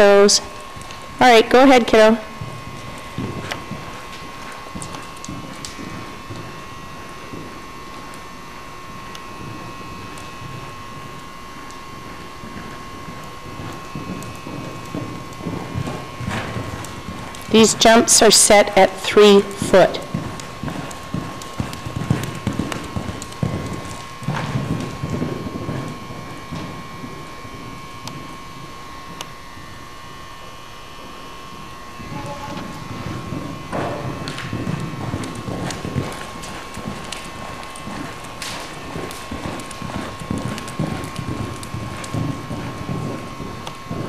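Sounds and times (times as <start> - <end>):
hoofbeats on soft arena footing: 0.0 - 30.4, 31.0 - 44.0
faint high whine: 0.0 - 44.0.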